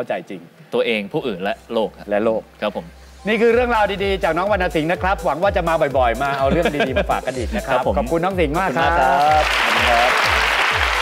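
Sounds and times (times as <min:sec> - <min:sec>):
background music with thumping beat: 0:03.2 - 0:11.0
studio audience applauding: 0:08.6 - 0:11.0.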